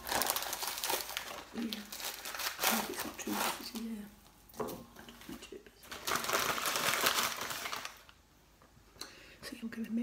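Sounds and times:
plastic bag crinkling: 0.0 - 4.1, 5.2 - 8.2.

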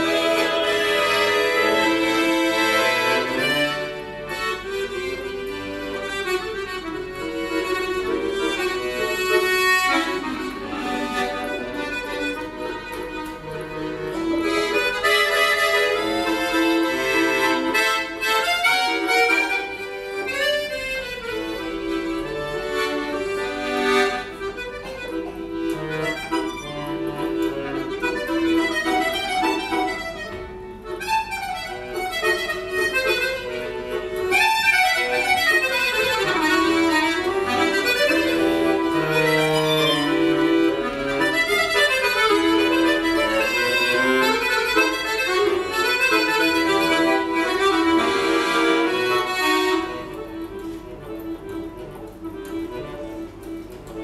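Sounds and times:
button accordion playing: 0.0 - 54.0.

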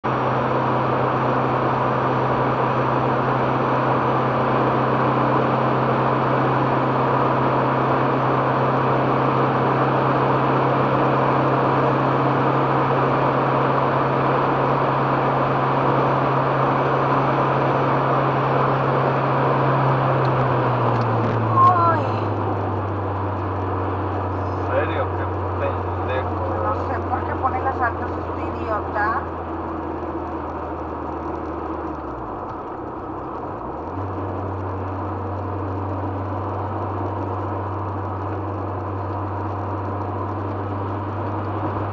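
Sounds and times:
car engine drone: 0.0 - 41.9.

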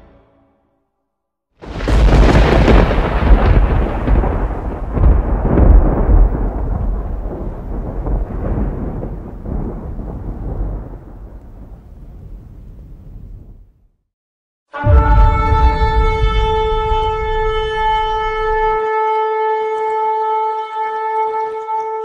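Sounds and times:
thunder rumbling: 1.6 - 13.8, 14.8 - 18.8.

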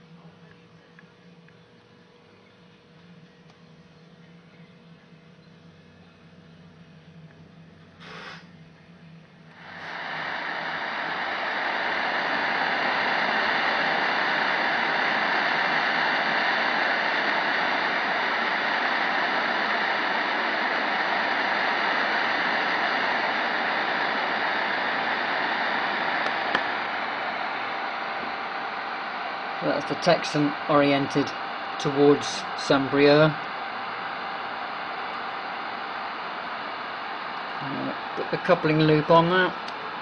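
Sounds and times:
radio static hiss: 7.9 - 8.5, 9.5 - 40.0
faint steady tones: 8.7 - 40.0.

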